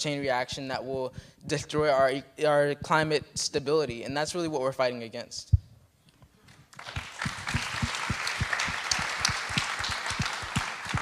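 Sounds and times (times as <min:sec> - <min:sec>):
audience applauding: 0:06.7 - 0:11.0.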